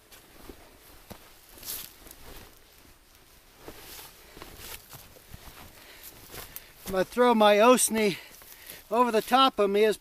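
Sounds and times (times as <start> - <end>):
faint footsteps in dry brush: 0.0 - 10.0.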